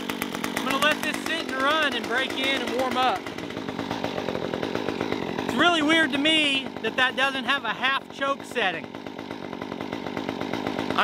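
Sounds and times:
chainsaw engine running: 0:00.0 - 0:11.0.

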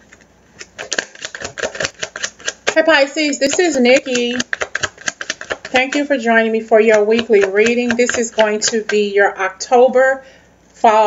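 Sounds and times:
cards being shuffled: 0:00.0 - 0:06.2, 0:06.8 - 0:09.0.

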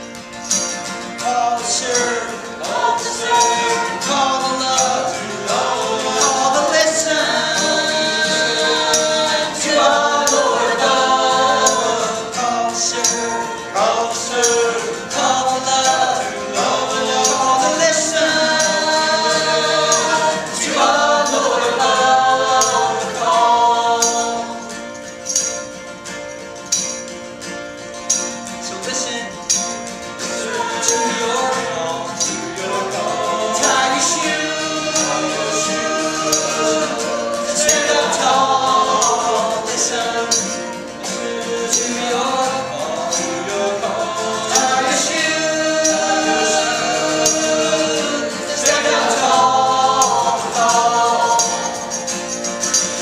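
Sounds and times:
group singing in harmony: 0:00.0 - 0:25.5, 0:30.0 - 0:53.0
acoustic guitar: 0:00.0 - 0:53.0
tambourine: 0:00.0 - 0:53.0.

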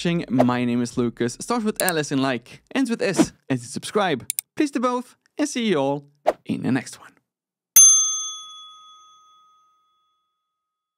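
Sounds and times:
notification bell ding: 0:07.8 - 0:10.1.

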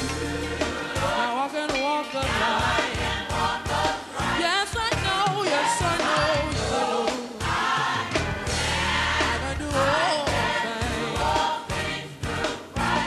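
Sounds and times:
gospel choir singing: 0:00.0 - 0:13.0.

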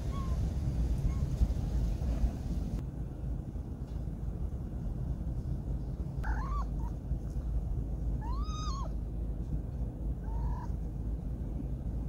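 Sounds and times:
steady low rumble: 0:00.0 - 0:12.0
cat meowing: 0:06.2 - 0:06.9, 0:08.2 - 0:08.9.

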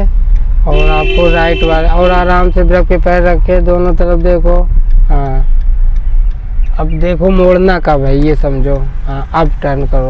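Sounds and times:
car engine rumble: 0:00.0 - 0:10.0
road noise inside car: 0:00.0 - 0:10.0.

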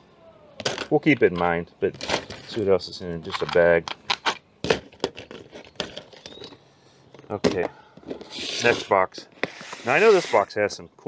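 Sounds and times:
plastic clicks and clatters: 0:03.2 - 0:08.2.

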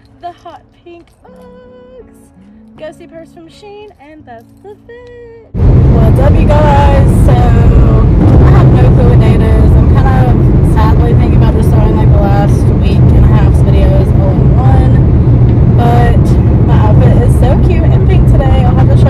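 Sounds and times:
woman talking: 0:00.0 - 0:15.1, 0:15.8 - 0:19.0
car road and engine rumble: 0:00.0 - 0:19.0.

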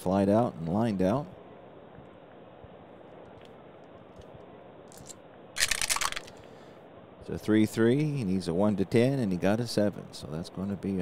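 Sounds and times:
dice clattering in a tray: 0:04.9 - 0:06.3.

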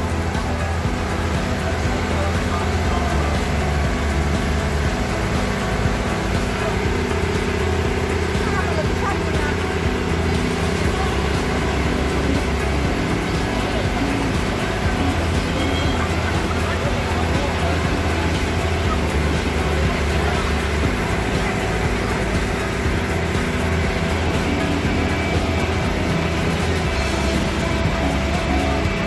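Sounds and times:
boat engine droning: 0:00.0 - 0:29.0.

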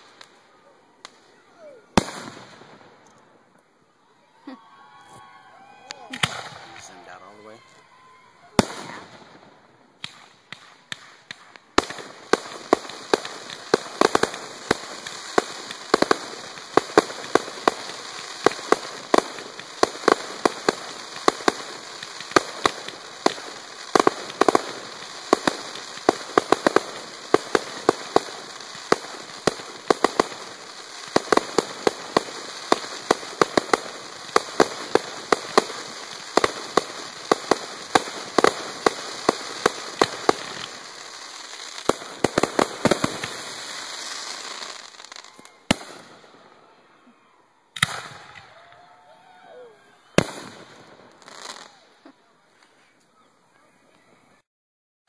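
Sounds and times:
fireworks crackling: 0:00.0 - 0:03.8, 0:04.4 - 0:49.0, 0:50.0 - 0:54.4
single firework bangs: 0:01.0 - 0:03.2, 0:05.9 - 0:07.3, 0:10.0 - 0:46.3, 0:47.8 - 0:48.6, 0:50.2 - 0:51.8.

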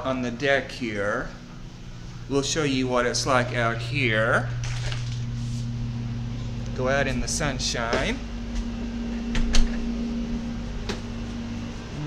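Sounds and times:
low mechanical hum: 0:00.0 - 0:12.0
low rumble: 0:01.3 - 0:12.0.

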